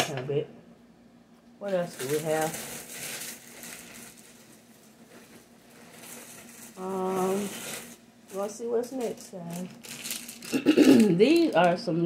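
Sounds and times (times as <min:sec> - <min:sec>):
packaging crinkling: 0:01.6 - 0:11.8.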